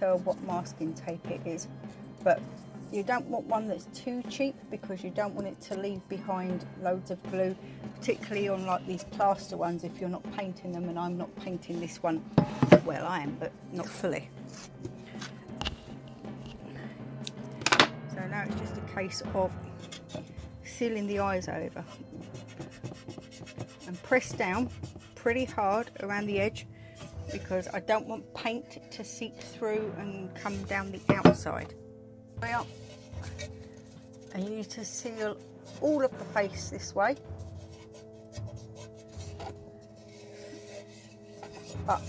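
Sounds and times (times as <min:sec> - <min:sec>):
quiet background music: 0:00.0 - 0:42.0.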